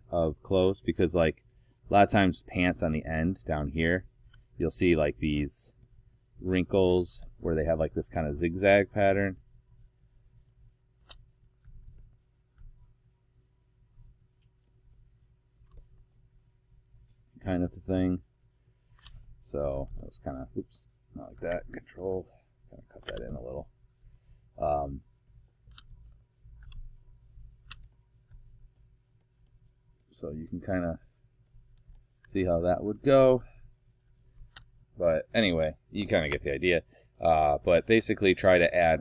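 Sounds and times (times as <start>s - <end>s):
room hum: 0.0s - 39.0s
computer mouse clicks: 23.0s - 23.4s, 25.6s - 27.0s, 27.6s - 28.4s.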